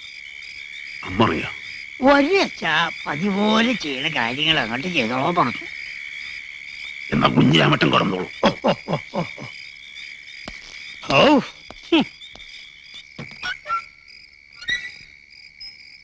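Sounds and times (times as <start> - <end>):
crickets chirring: 0.0 - 16.0
frogs croaking: 0.0 - 16.0.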